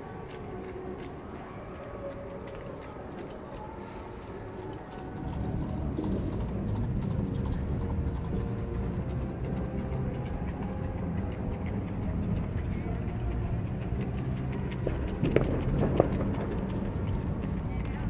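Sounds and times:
faint voices: 0.0 - 18.0.

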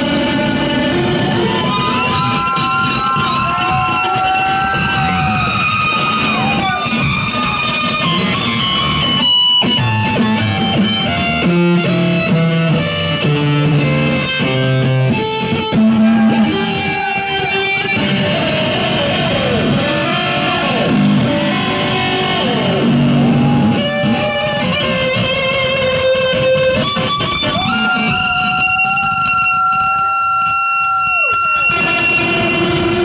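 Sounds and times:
electric bass guitar solo: 0.0 - 33.0.

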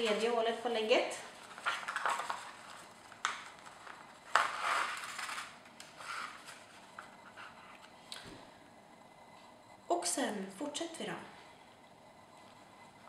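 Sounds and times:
paper rustling: 1.2 - 7.9.

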